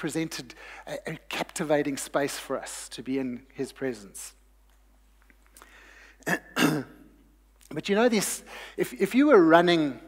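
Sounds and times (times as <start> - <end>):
man clearing his throat: 6.2 - 7.1.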